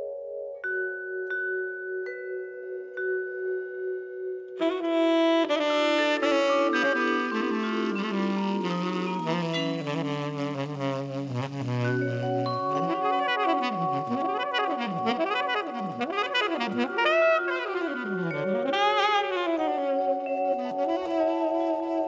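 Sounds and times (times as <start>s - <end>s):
big band jazz: 4.6s - 22.0s.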